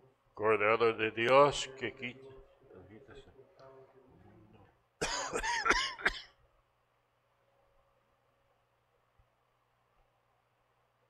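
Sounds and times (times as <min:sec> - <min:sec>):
man coughing: 0:05.0 - 0:06.4.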